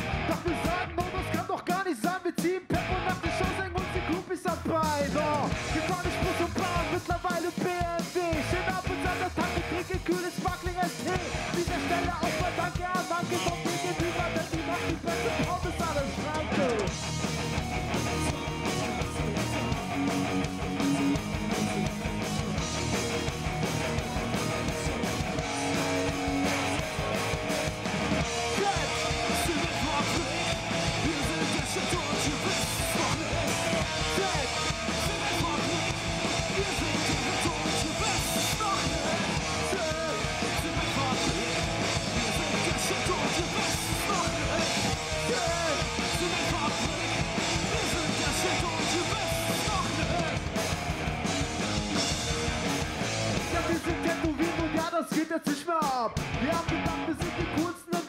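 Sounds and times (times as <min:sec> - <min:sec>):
bass: 0:00.0 - 0:55.0, 0:56.0 - 0:57.8
distorted electric guitars: 0:00.0 - 0:58.0
drums: 0:00.0 - 0:58.0
person rapping into microphone: 0:00.2 - 0:16.9, 0:28.4 - 0:50.4, 0:53.4 - 0:58.0.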